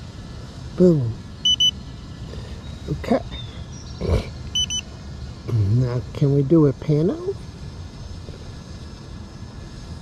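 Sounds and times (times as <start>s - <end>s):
low outdoor rumble: 0.0s - 10.0s
short high electronic beeps: 1.4s - 1.8s, 4.6s - 4.8s.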